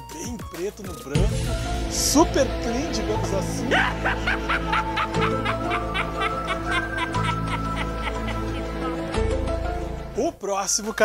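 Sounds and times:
background music sustained notes: 0.0 - 11.0
rapid cackling laugh: 3.7 - 9.1.

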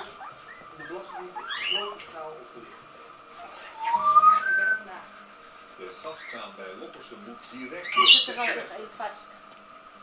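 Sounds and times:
puppy squealing: 0.0 - 4.7, 7.8 - 8.3.

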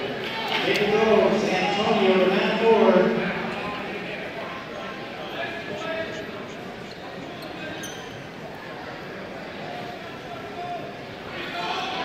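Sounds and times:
crowd chatter and clatter: 0.0 - 12.0
man announcing over public address: 0.6 - 4.1.

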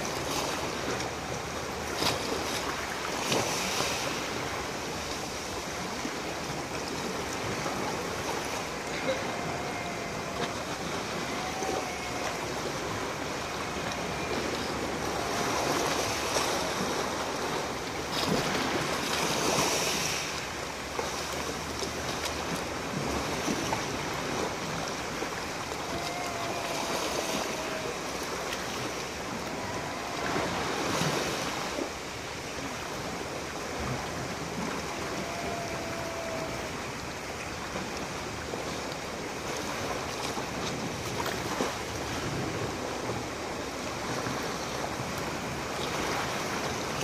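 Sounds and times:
waves washing over pebbles: 0.0 - 47.0.

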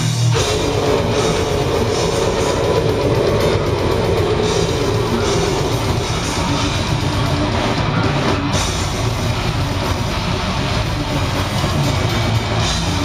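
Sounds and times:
distorted electric guitars: 0.0 - 13.0
drum kit: 0.0 - 13.0.

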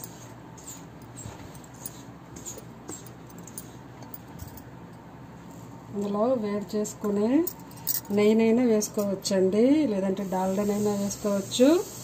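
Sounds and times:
bangles and rings clinking: 7.4 - 8.2.

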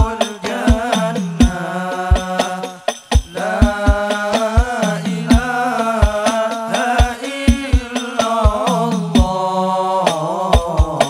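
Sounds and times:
deep frame drum beats: 0.0 - 9.5, 10.1 - 11.0
man singing a melody: 0.0 - 11.0.

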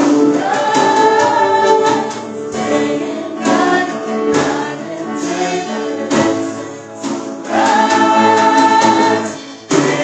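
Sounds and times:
drums and keyboard: 0.0 - 10.0
people singing worship song: 0.0 - 10.0.

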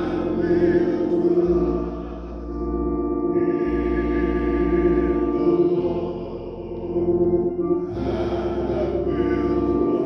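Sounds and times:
men singing a slow hymn: 0.0 - 2.7, 3.3 - 7.1, 7.8 - 10.0.

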